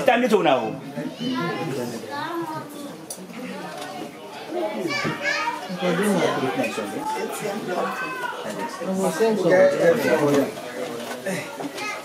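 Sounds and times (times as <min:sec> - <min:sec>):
people talking over one another: 0:00.0 - 0:12.0
children's voices: 0:00.9 - 0:09.2, 0:09.8 - 0:12.0.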